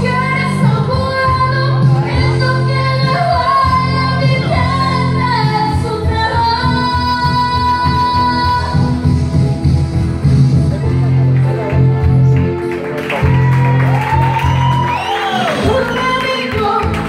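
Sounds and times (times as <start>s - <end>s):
woman singing into microphone: 0.0s - 9.2s, 15.5s - 17.0s
backing track music: 0.0s - 17.0s.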